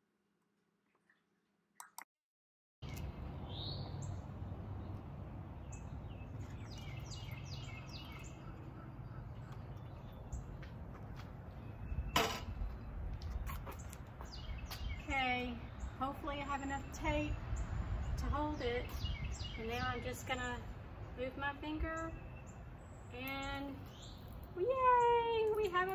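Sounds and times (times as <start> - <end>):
birds chirping: 2.8 - 25.9.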